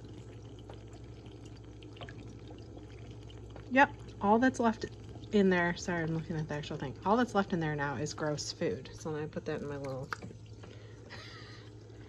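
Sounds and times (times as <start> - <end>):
aquarium water running: 0.0 - 12.0.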